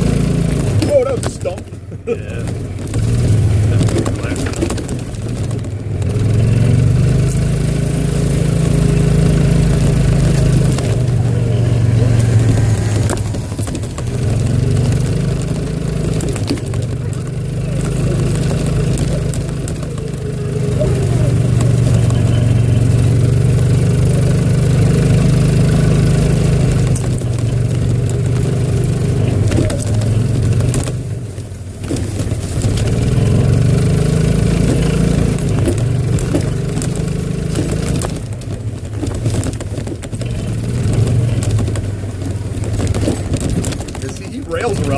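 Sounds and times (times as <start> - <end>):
golf cart engine running: 0.0 - 44.9.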